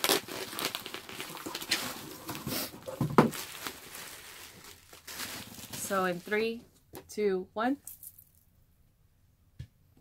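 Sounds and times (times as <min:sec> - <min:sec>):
cardboard and plastic rustling: 0:00.0 - 0:06.8.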